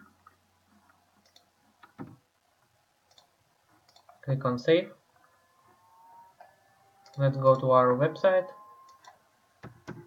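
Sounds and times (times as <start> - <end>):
mouse and keyboard clicks: 1.2 - 2.2, 3.1 - 4.2.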